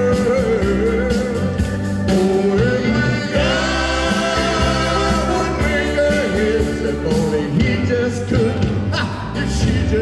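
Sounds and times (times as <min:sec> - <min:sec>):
live rock band playing: 0:00.0 - 0:10.0
man singing lead vocal: 0:00.0 - 0:10.0.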